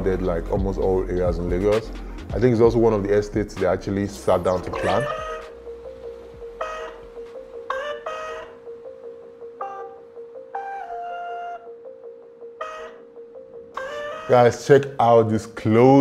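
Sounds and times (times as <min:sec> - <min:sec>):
held note under slow melody: 0:04.2 - 0:15.0.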